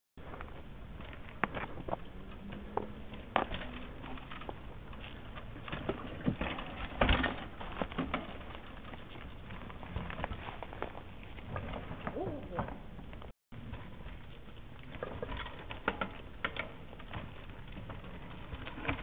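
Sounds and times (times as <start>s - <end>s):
mountain bike clattering over rock: 3.1s - 12.9s, 13.6s - 19.0s.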